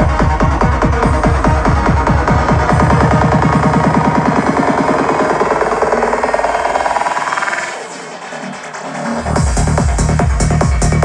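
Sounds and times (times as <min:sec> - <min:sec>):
electronic dance music: 0:00.0 - 0:11.0
fast bass pattern: 0:00.0 - 0:11.0.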